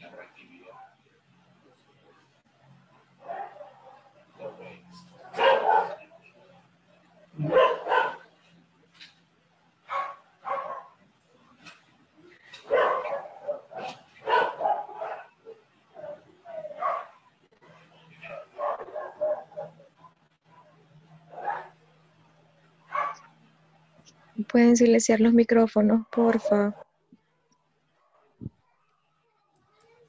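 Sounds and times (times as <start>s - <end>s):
dog barking: 3.2s - 6.0s, 7.4s - 8.3s, 9.9s - 11.0s, 12.6s - 20.2s, 21.3s - 21.8s, 22.9s - 23.3s.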